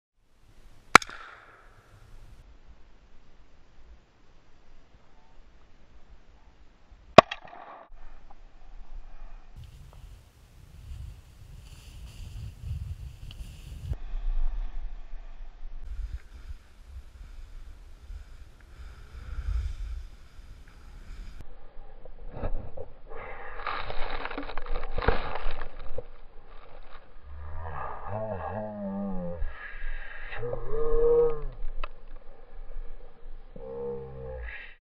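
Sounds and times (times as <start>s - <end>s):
snowboard scraping through snow: 9.7s - 14.0s.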